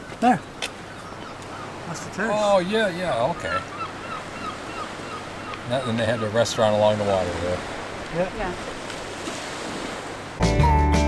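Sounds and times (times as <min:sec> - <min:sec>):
wind and sea hiss: 0:00.0 - 0:10.4
music with sustained notes and bass: 0:10.4 - 0:11.0.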